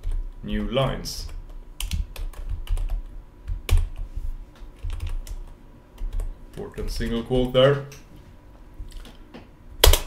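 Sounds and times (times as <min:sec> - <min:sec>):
computer keyboard typing: 0:00.0 - 0:04.1, 0:04.8 - 0:07.5.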